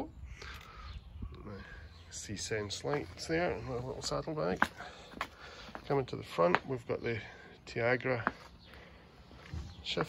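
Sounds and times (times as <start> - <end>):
man talking: 1.3 - 5.0, 5.8 - 8.4.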